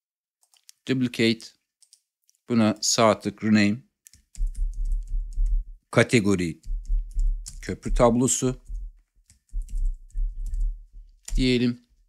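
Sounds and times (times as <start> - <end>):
typing on computer keyboard: 1.8 - 2.0, 4.1 - 5.7, 6.6 - 11.6.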